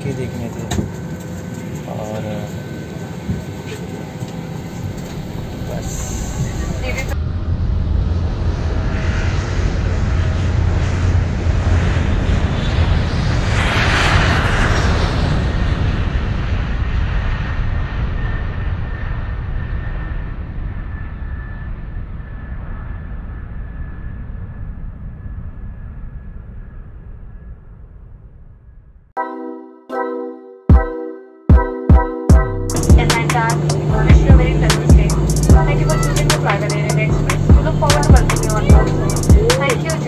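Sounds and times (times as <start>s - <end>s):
airliner engines and rushing air: 0.0s - 29.0s, 32.5s - 40.0s.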